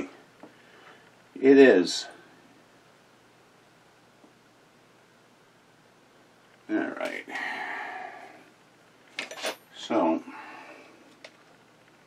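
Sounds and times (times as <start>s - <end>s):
person speaking: 6.7s - 8.4s.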